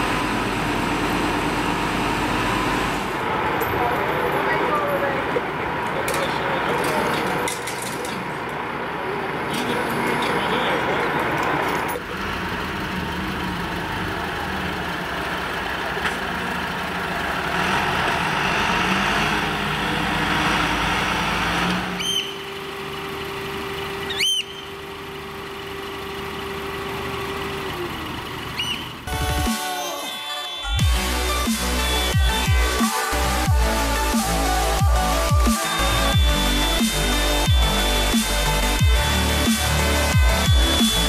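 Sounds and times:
diesel fire engine driving off: 0:00.0 - 0:41.0.

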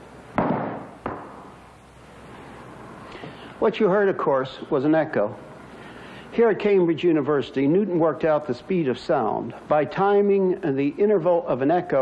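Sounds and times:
echo off stone walls: 0:00.4 - 0:01.6.

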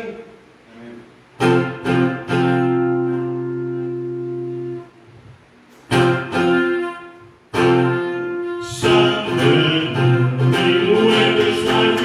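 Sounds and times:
acoustic guitar chord ringing: 0:01.4 - 0:05.0, 0:05.9 - 0:12.0.

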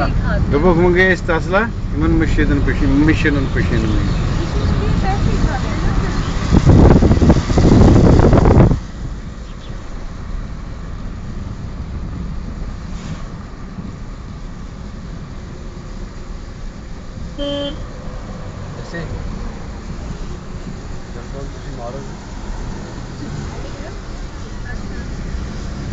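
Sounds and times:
car road and engine rumble: 0:00.0 - 0:25.9
vehicle horn toot: 0:17.4 - 0:17.9.

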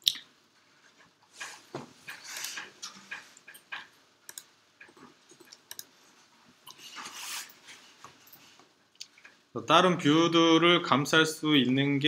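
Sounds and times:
computer mouse clicking: 0:02.1 - 0:05.9
soft hissy rustles: 0:05.2 - 0:10.2.

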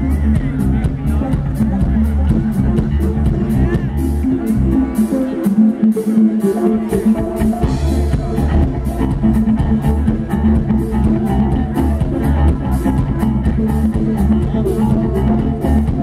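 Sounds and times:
bass: 0:00.0 - 0:16.0
drum kit beat: 0:00.0 - 0:16.0
electric guitars: 0:00.0 - 0:16.0
keyboards: 0:00.0 - 0:16.0.

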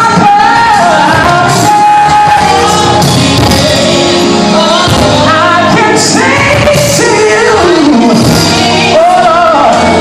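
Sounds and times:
loud music: 0:00.0 - 0:10.0
man singing into microphone: 0:00.0 - 0:10.0.

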